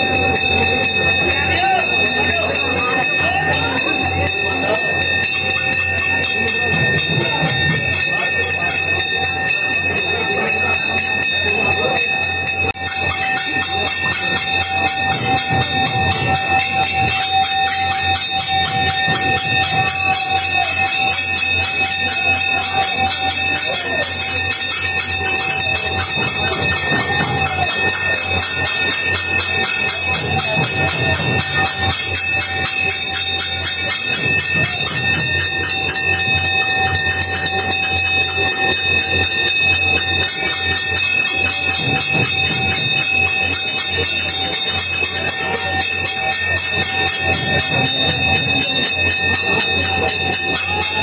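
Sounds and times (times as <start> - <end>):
metal bells ringing rapidly: 0.0 - 51.0.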